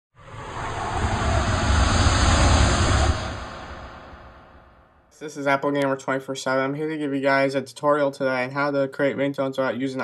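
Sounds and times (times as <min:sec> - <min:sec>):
deep rumble: 0:00.2 - 0:05.1
rushing swell of noise: 0:00.2 - 0:05.1.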